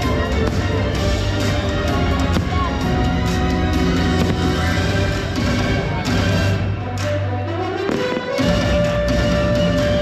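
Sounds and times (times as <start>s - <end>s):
show music: 0.0s - 10.0s
fireworks banging: 1.8s - 6.4s, 7.9s - 9.4s.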